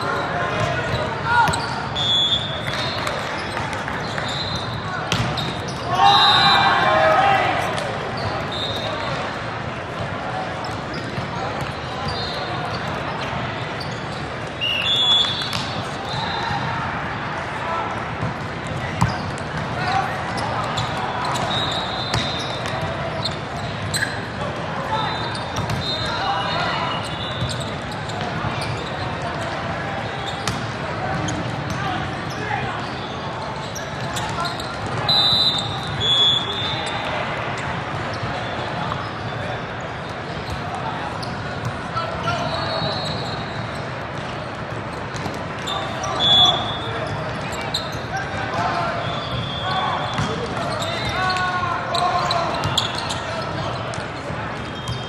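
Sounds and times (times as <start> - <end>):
players shouting: 0.0 - 9.3, 45.6 - 54.9
volleyball hits: 5.1 - 5.8.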